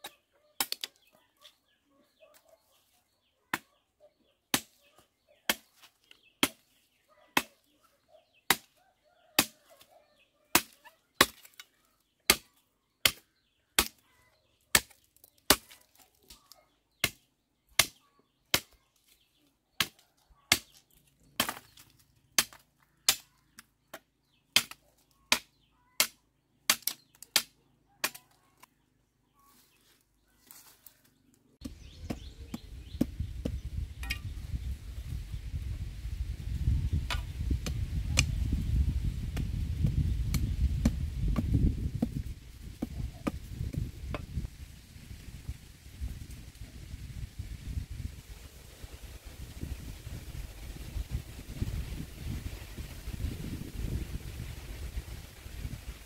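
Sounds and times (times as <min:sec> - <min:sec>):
machete chopping wood: 0:09.4 - 0:09.6, 0:10.6 - 0:11.7, 0:14.8 - 0:16.0, 0:21.4 - 0:21.8, 0:22.4 - 0:23.2, 0:23.9 - 0:28.2.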